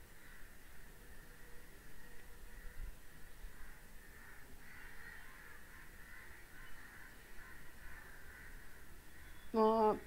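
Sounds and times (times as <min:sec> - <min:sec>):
faint bird calls: 0:00.0 - 0:10.0.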